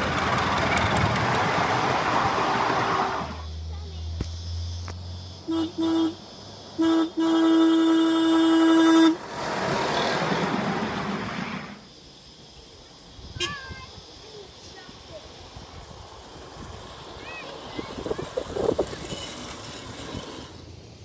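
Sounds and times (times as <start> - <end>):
train rushing and rumbling past: 0.0 - 5.6, 8.5 - 12.3, 15.0 - 21.0
miniature train horn toots: 5.5 - 6.2, 6.8 - 9.2.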